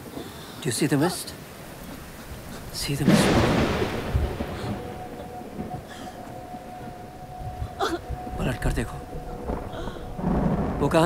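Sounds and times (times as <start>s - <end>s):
low rumble: 2.7s - 11.0s
faint high tone: 4.6s - 10.3s.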